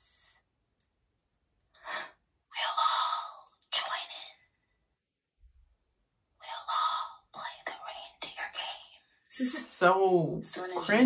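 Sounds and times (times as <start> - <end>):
person whispering: 0.0 - 0.3, 1.9 - 4.4, 6.4 - 9.8, 10.4 - 11.0.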